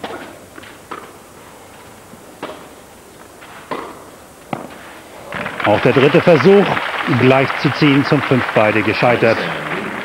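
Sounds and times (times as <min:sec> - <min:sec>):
tennis racquet hitting ball: 0:02.4 - 0:02.7, 0:03.7 - 0:05.5
crowd murmur: 0:05.1 - 0:10.0.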